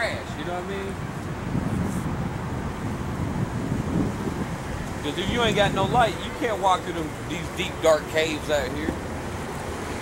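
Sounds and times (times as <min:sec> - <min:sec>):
wind noise on microphone: 0:00.0 - 0:07.8
bus engine rumble: 0:00.0 - 0:10.0.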